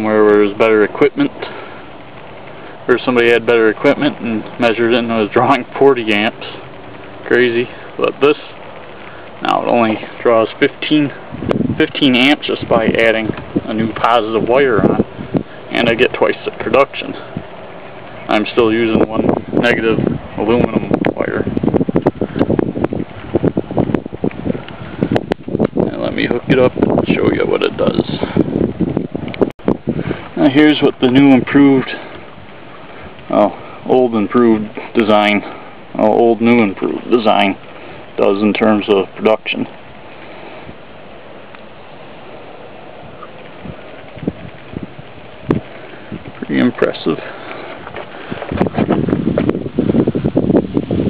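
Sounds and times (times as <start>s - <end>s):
wind buffeting microphone: 0.0s - 51.0s
rustling and knocking crackles: 1.3s - 2.9s, 5.5s - 18.3s, 39.7s - 50.8s.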